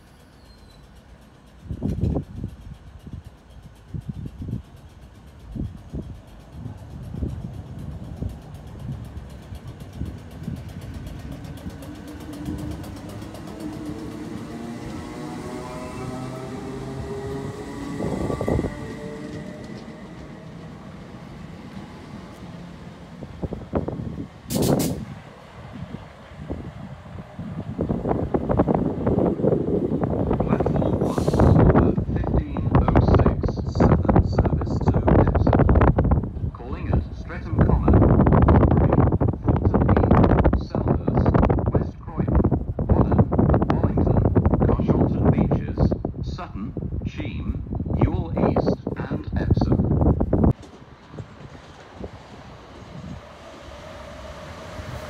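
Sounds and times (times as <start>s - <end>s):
wheels knocking on rail joints: 1.0s - 15.4s, 50.6s - 53.3s
wind buffeting microphone: 1.6s - 55.0s
electric train motor whine: 10.2s - 24.4s.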